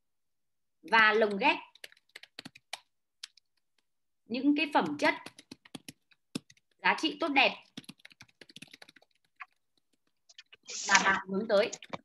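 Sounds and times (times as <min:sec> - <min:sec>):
computer keyboard typing: 0:00.9 - 0:03.9, 0:04.7 - 0:06.8, 0:07.5 - 0:10.6, 0:11.5 - 0:12.0.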